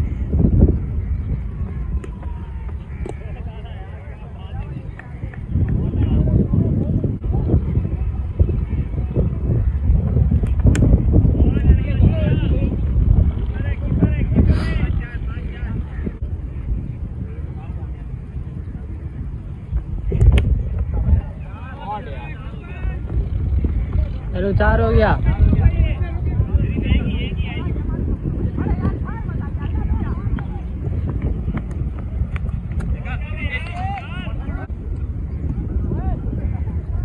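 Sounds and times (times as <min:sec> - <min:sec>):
wind rumble on microphone: 0:00.0 - 0:37.0.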